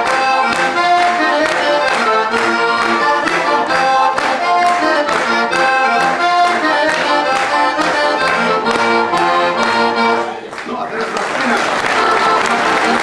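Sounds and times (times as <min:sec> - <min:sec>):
button accordion folk tune: 0:00.0 - 0:13.0.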